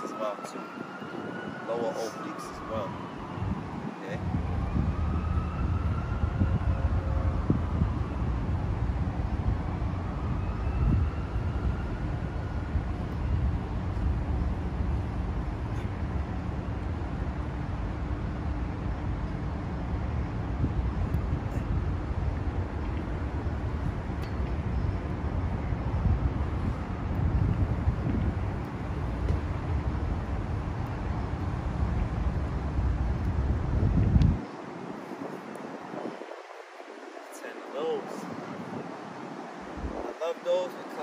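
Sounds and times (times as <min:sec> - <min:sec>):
city background rumble: 0:00.0 - 0:41.0.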